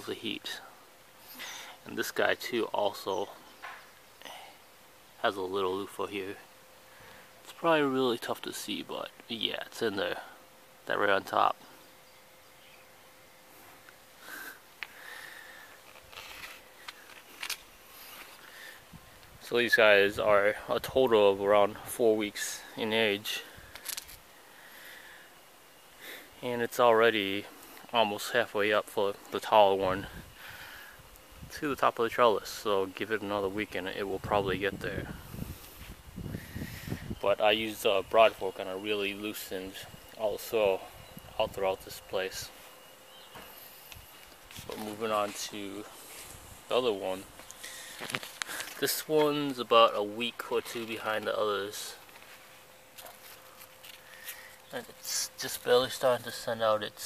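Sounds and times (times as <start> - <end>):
faint outdoor hiss: 0.0 - 57.0
faint steady hum: 0.0 - 57.0.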